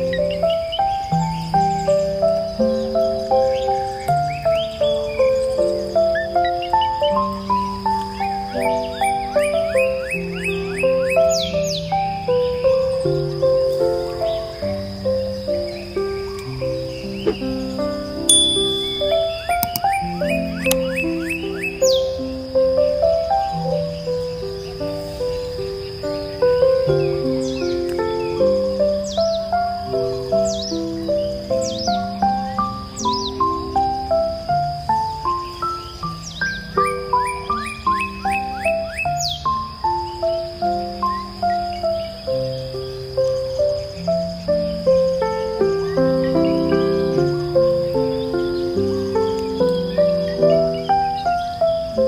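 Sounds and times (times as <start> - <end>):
high falling bird chirps: 0.0 - 22.4, 35.1 - 40.2
steady high tone: 18.3 - 19.8
soft chime-like instrumental music: 18.3 - 21.0.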